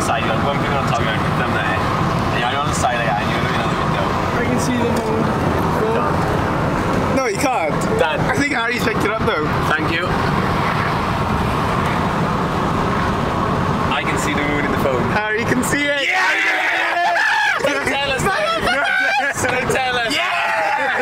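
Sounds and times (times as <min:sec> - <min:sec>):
voices: 0:00.0 - 0:12.3, 0:13.8 - 0:21.0
van road and engine noise: 0:00.0 - 0:21.0.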